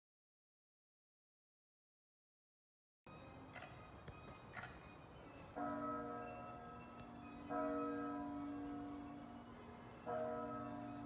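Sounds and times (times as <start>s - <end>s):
bell-like clock chime: 5.3s - 11.0s.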